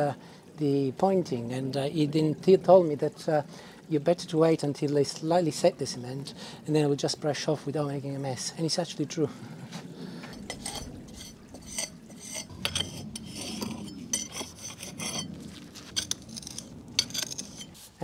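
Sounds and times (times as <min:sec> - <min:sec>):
stiff brush scrubbing brick: 0:10.4 - 0:18.0.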